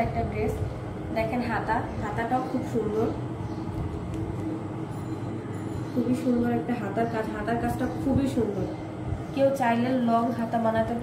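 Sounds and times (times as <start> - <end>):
faint hum: 0.0 - 11.0
low continuous rumble: 0.0 - 11.0.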